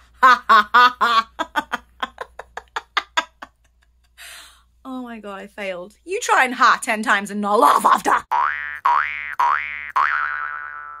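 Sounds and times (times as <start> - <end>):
cartoon boing twangs: 8.3 - 11.0.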